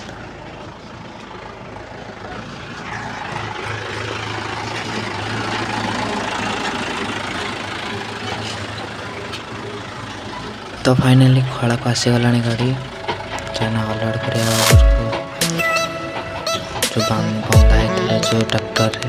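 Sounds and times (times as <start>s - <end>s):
tractor diesel engine humming: 0.0s - 19.0s.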